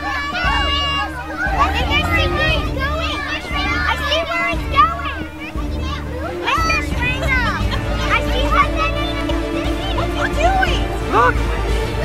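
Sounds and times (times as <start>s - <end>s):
children yelling and shouting: 0.0s - 12.0s.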